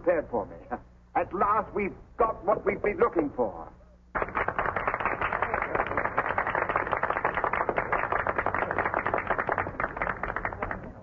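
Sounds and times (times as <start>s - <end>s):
crowd applauding: 4.2s - 11.0s.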